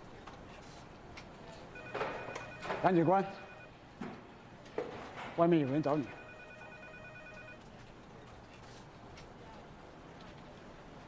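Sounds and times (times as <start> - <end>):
electronic telephone ring: 1.8 - 3.8, 5.6 - 7.6.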